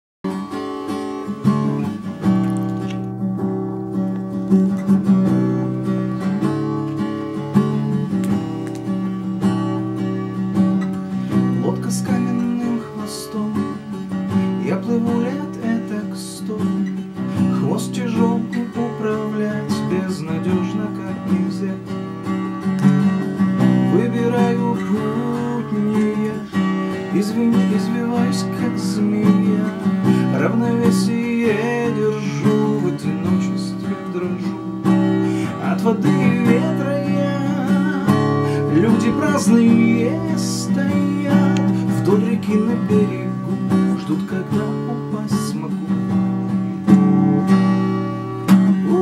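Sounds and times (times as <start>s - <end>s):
acoustic guitar strumming chords: 0.2s - 49.0s.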